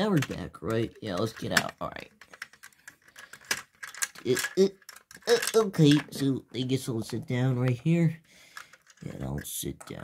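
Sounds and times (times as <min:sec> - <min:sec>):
clicks and knocks of toy car: 0:00.0 - 0:06.4
person saying uh: 0:04.3 - 0:08.2.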